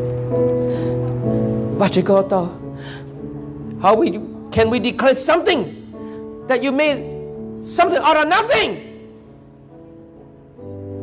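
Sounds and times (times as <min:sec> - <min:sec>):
soft sustained chords music: 0:00.0 - 0:11.0
man preaching into a microphone: 0:07.7 - 0:09.0.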